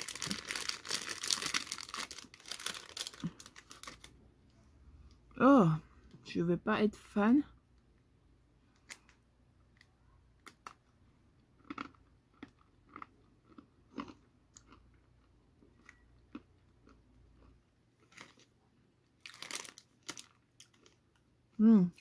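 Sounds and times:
biscuit crunching and chewing: 0:00.0 - 0:04.2, 0:09.8 - 0:21.3.

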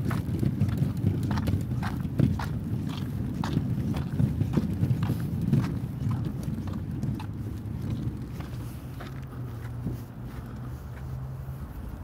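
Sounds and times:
walker wheels rolling: 0:00.0 - 0:12.0.

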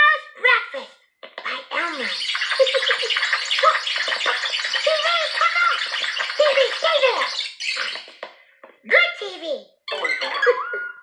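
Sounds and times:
high-pitched voices chattering and laughing: 0:01.5 - 0:08.3.

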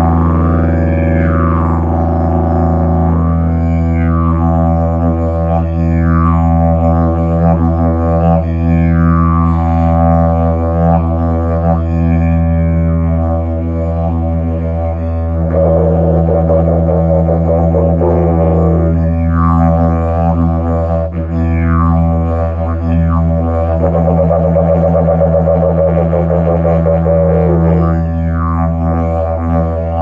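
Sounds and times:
didgeridoo drone: 0:00.0 - 0:30.0
warbling buzzing didgeridoo: 0:00.0 - 0:30.0.

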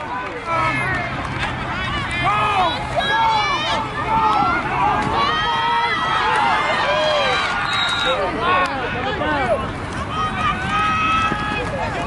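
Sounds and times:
crowd shouting and cheering: 0:00.0 - 0:12.0.

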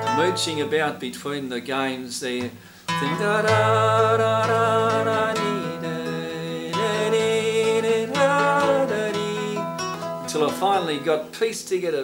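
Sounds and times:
classical guitar chords: 0:00.0 - 0:01.2, 0:02.9 - 0:12.0
person humming along: 0:03.0 - 0:09.8.

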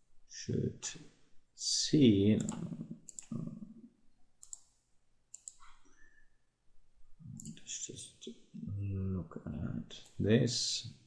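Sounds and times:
faint computer mouse clicks: 0:04.4 - 0:04.7, 0:05.3 - 0:06.0.

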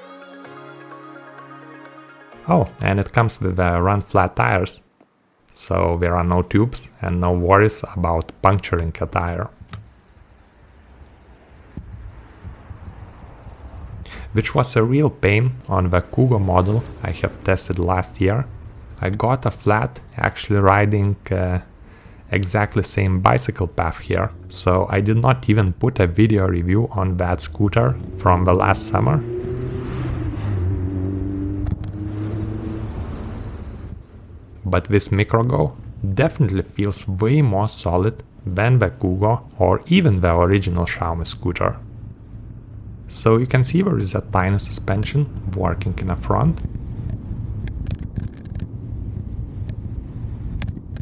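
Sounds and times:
tyre and road rush: 0:02.5 - 0:51.0
wind buffeting microphone: 0:08.9 - 0:36.9, 0:38.3 - 0:51.0.

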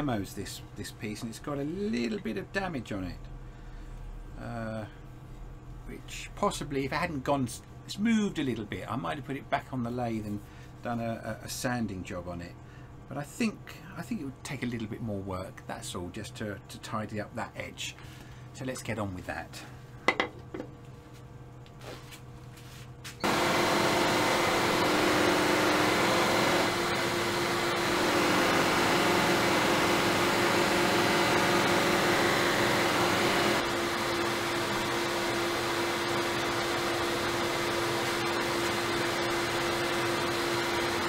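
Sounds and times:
wood lathe whirring: 0:23.2 - 0:41.0.

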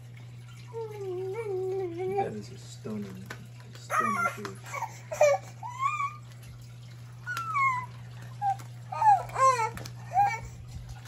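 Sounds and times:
baby fussing and crying: 0:03.9 - 0:06.2, 0:07.3 - 0:10.6.

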